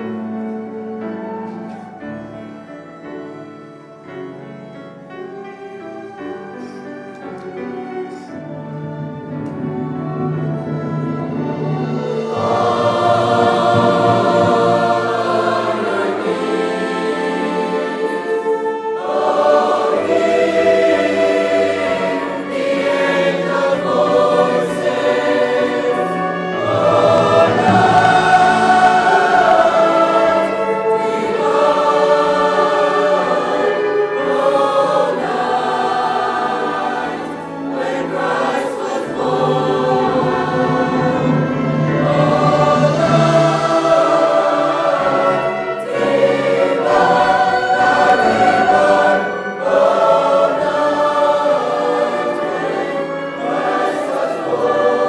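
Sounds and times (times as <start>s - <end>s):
flute: 0.0s - 55.0s
large choir singing: 0.0s - 55.0s.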